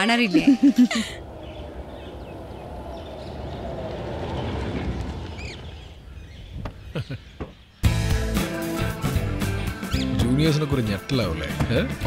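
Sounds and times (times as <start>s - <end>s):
small car engine rumbling: 0.5s - 12.0s
bird chirps: 1.2s - 8.0s, 8.8s - 12.0s.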